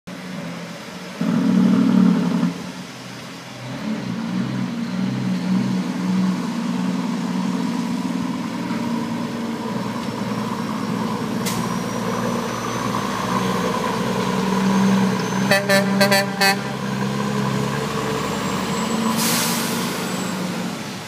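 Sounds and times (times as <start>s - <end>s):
truck diesel engine under load: 0.1s - 21.0s.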